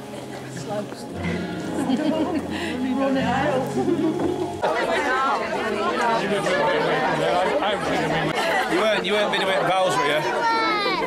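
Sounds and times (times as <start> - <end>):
overlapping indistinct conversation: 0.0 - 11.0.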